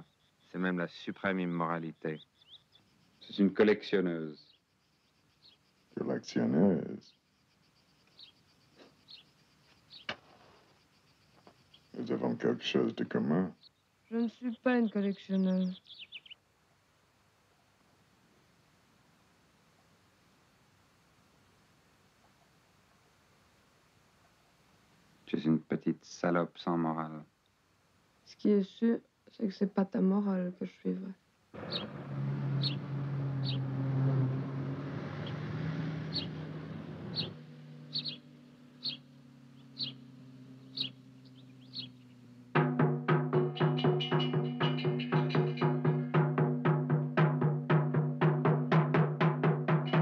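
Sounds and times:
bird chirping: 0.0s - 16.4s, 31.6s - 42.6s, 43.4s - 46.1s
faint hiss: 0.0s - 32.4s
small car engine driving away: 31.6s - 42.8s
short high bird chirp: 31.7s - 32.0s, 32.6s - 32.8s, 33.4s - 33.6s, 36.1s - 36.4s, 37.0s - 42.3s.

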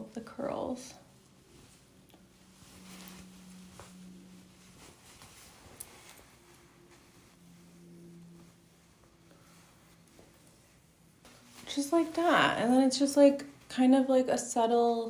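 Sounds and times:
fingers rustling through hair: 0.0s - 13.5s
faint low hum: 0.0s - 15.0s.

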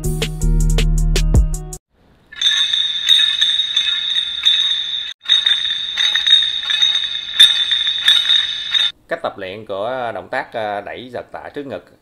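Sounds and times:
bright jingling music with beat: 2.4s - 8.9s.

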